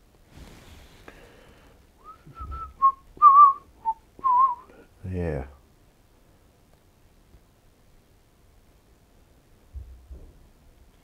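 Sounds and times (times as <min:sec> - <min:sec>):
man whistling a tune: 0:02.0 - 0:04.7.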